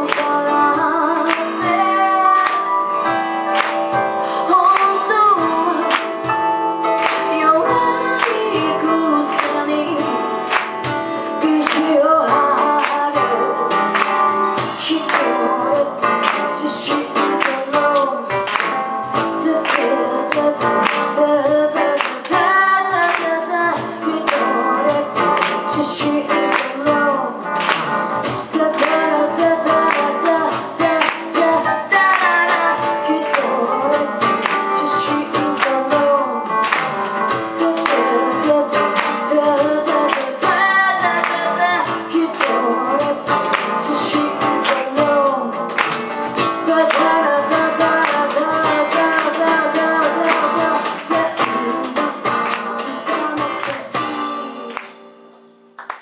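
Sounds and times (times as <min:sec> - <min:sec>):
woman singing into microphone: 0:00.0 - 0:55.2
guitar plucked and strummed: 0:00.0 - 0:55.5.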